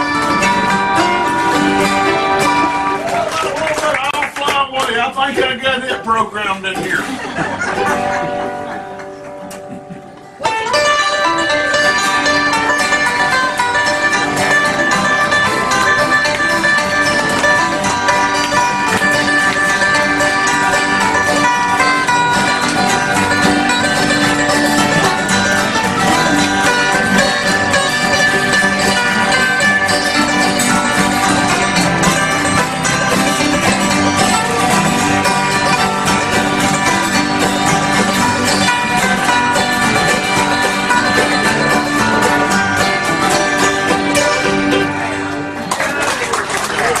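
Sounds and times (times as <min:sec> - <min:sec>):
acoustic guitars strumming: 0:00.0 - 0:47.0
mandolin: 0:00.0 - 0:47.0.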